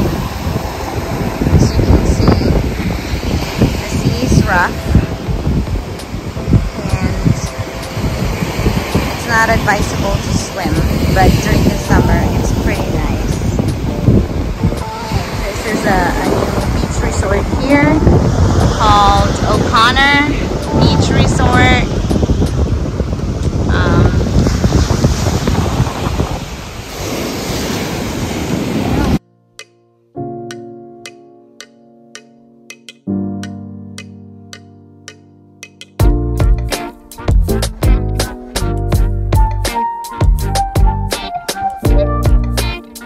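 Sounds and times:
surf breaking on shore: 0:00.0 - 0:29.2
wind buffeting microphone: 0:00.0 - 0:29.2.

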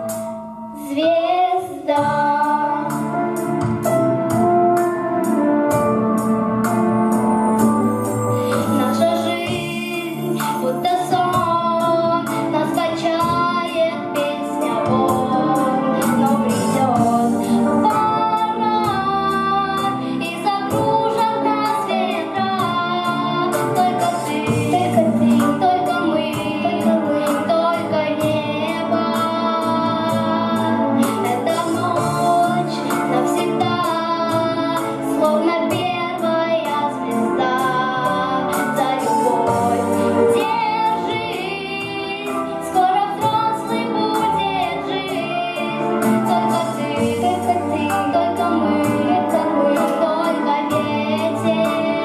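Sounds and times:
backing track with steady beat: 0:00.0 - 0:52.0
musical accompaniment: 0:00.0 - 0:52.0
boy singing into a microphone: 0:00.8 - 0:03.4, 0:08.4 - 0:52.0.

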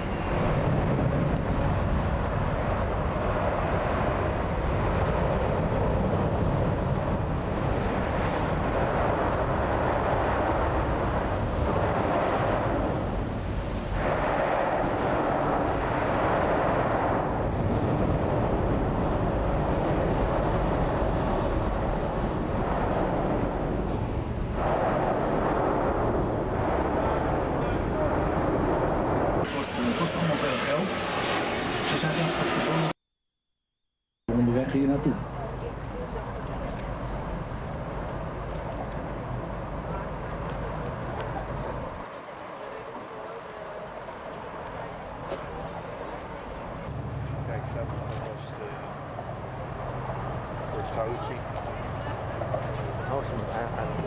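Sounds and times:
boat rumbling rush: 0:00.0 - 0:30.3, 0:34.3 - 0:54.0
jet airliner passing overhead: 0:00.0 - 0:33.0, 0:34.3 - 0:54.0.

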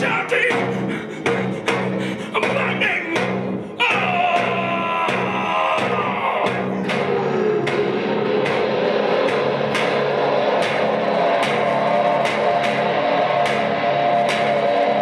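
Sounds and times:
sustained drone: 0:00.0 - 0:15.0
sharp ringing attacks: 0:02.4 - 0:15.0.

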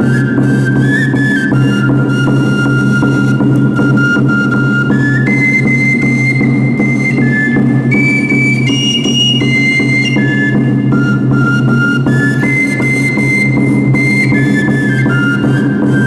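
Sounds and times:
high flute melody: 0:00.0 - 0:16.0
steady drum beat: 0:00.0 - 0:16.0.

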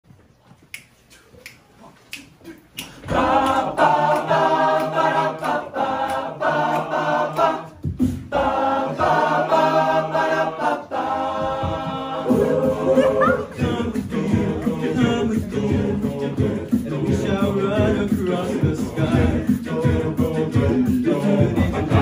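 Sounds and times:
finger snaps: 0:00.7 - 0:03.6
male a cappella group singing: 0:03.0 - 0:22.0.

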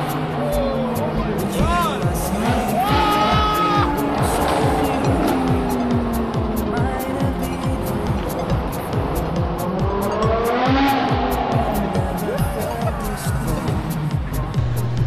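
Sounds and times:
car engine revving in tunnel: 0:00.0 - 0:07.0, 0:07.9 - 0:15.0
music with fast beat: 0:00.0 - 0:15.0.

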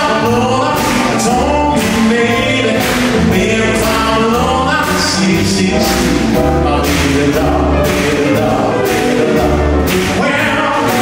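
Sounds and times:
heavy bass notes: 0:00.0 - 0:11.0
live soul-jazz band: 0:00.0 - 0:11.0.

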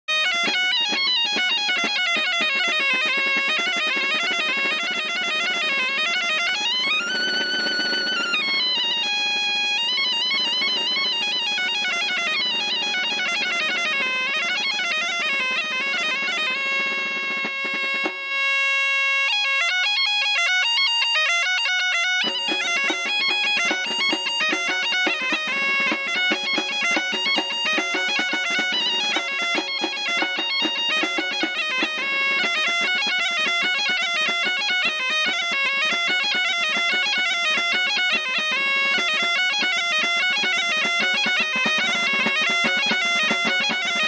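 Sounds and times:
bagpipe dance tune with drone: 0:00.1 - 0:44.0.

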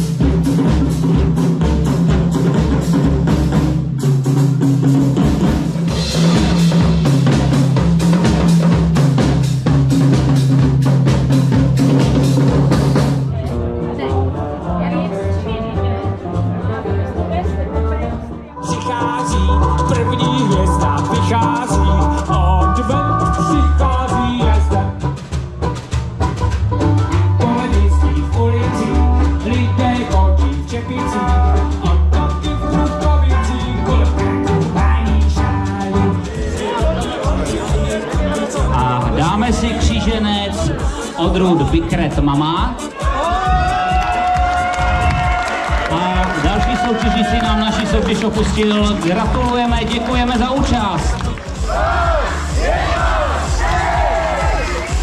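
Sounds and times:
fast busy drumming: 0:00.0 - 0:14.2, 0:18.6 - 0:55.0
live band playing: 0:00.0 - 0:55.0
sustained bass notes: 0:00.0 - 0:55.0.

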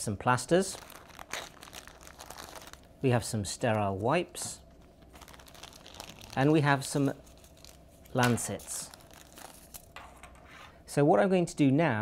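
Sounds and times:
plastic bag and paper crinkling: 0:00.5 - 0:02.9, 0:04.8 - 0:10.0.

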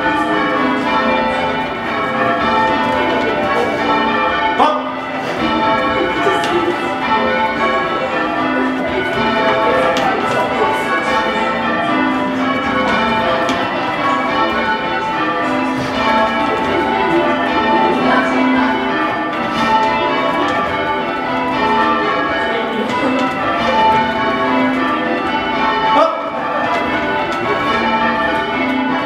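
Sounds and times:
church bells change ringing: 0:00.0 - 0:29.0.

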